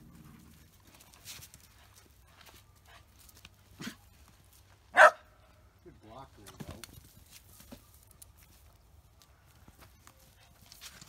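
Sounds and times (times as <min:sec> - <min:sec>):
dog barking: 0:04.9 - 0:05.3.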